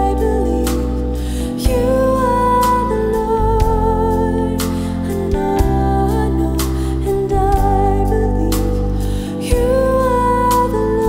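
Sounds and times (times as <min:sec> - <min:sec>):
soft instrumental accompaniment: 0:00.0 - 0:11.0
woman singing into microphone: 0:00.0 - 0:11.0.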